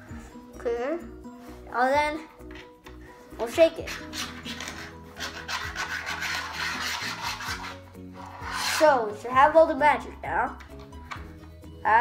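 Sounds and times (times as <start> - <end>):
palms rubbing with coin: 3.8 - 9.0.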